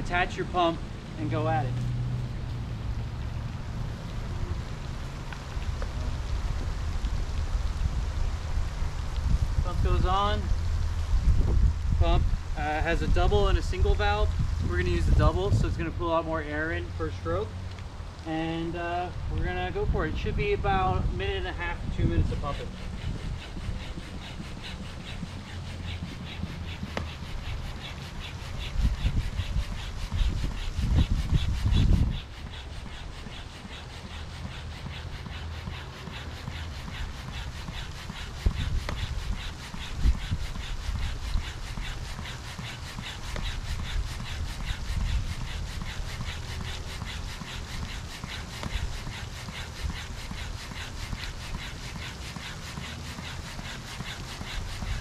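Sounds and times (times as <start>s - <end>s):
hand pump strokes: 0.0s - 1.9s, 18.4s - 55.0s.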